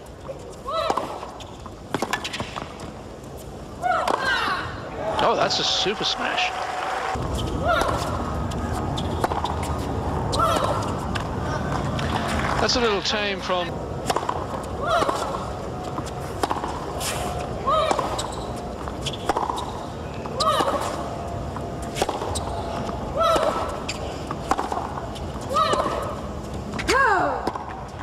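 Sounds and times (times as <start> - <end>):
rackets striking tennis ball: 0.8 - 4.4, 7.1 - 12.6, 14.0 - 28.0.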